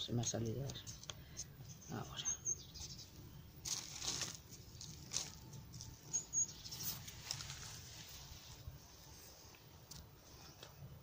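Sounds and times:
hands crumbling soil: 3.6 - 6.2.

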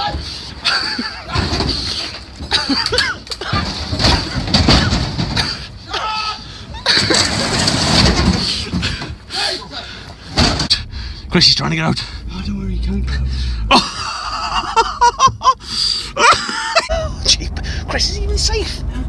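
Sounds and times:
plastic cabin knocking and scraping: 1.3 - 5.6
heavy rumbling scrapes: 7.0 - 9.0, 10.3 - 15.0.

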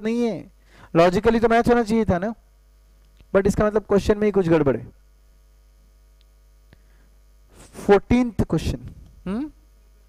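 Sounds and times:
man speaking: 0.0 - 2.4, 3.3 - 4.9, 7.6 - 10.0
electrical mains hum: 0.0 - 10.0.

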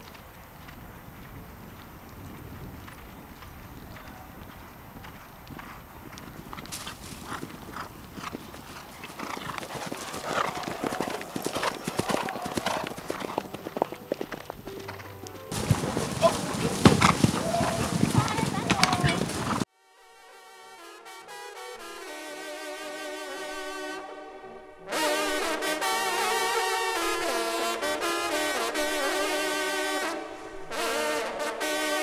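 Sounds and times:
horses cantering over turf: 0.0 - 19.7.

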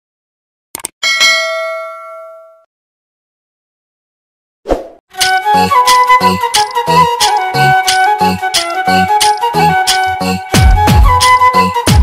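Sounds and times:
bell ringing: 1.0 - 2.7.

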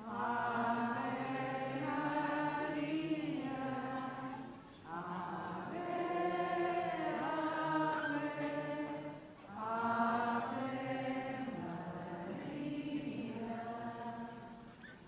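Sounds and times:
group singing a hymn: 0.0 - 15.0.

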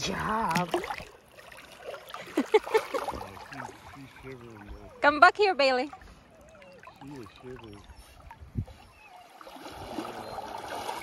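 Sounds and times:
river water rushing and gurgling: 9.2 - 11.0.

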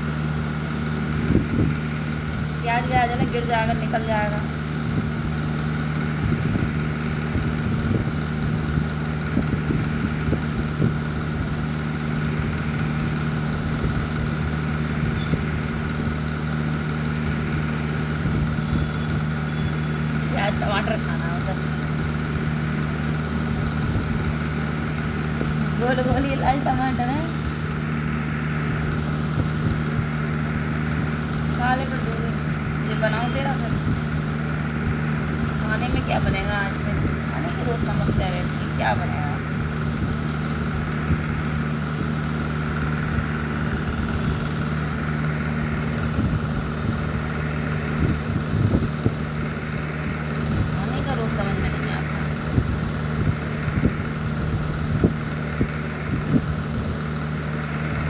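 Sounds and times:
machine hum: 0.0 - 58.0.

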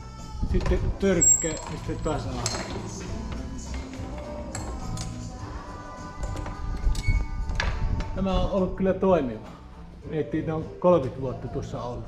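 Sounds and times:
metal fittings clinking and knocking: 1.2 - 5.3.

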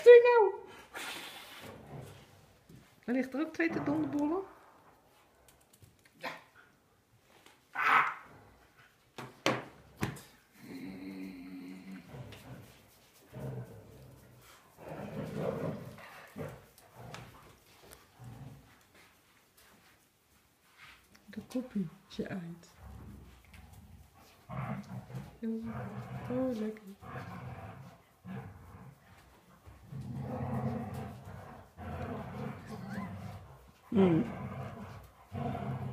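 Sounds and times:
small dog growling: 3.7 - 4.7, 10.5 - 18.8, 22.8 - 29.0, 29.9 - 35.9
small dog making low vocal sounds: 10.5 - 12.8, 32.3 - 34.3.

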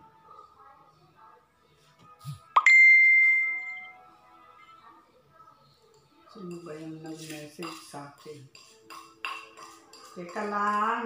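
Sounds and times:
bell-like ding: 2.6 - 3.9.

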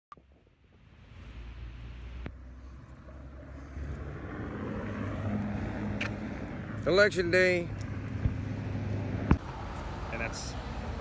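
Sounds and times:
car engine and tyres: 0.1 - 11.0.

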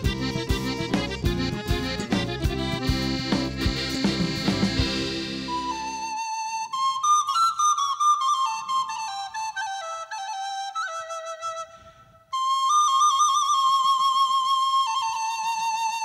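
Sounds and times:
wooden flute folk melody: 0.0 - 16.0.

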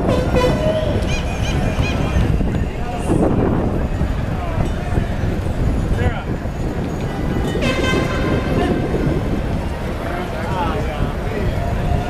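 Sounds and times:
horn sounding: 0.0 - 2.2, 7.6 - 9.4
scattered voices: 0.0 - 12.0
wind and riding noise: 0.0 - 12.0.

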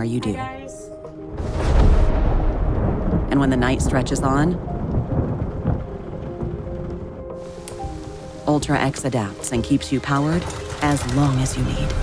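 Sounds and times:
thunder rumbling: 1.3 - 12.0
steady rain: 1.4 - 12.0.

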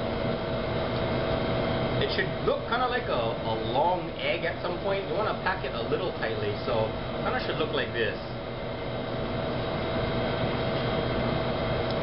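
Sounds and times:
kitchen fans humming with whine: 0.0 - 12.0.

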